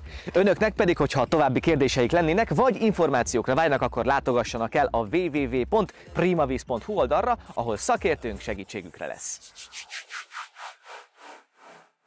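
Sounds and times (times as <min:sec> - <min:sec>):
short rubbing swishes: 0:08.8 - 0:12.0.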